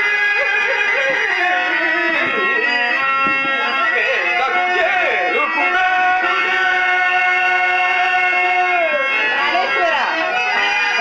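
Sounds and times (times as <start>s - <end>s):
man singing long held note: 0.0s - 2.6s, 3.7s - 11.0s
harmonium: 0.0s - 11.0s.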